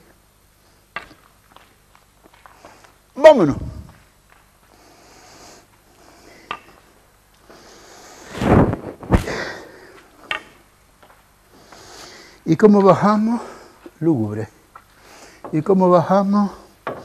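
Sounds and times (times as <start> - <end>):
walking staff tapping concrete: 0.9 - 3.0
footsteps on concrete: 1.2 - 3.0.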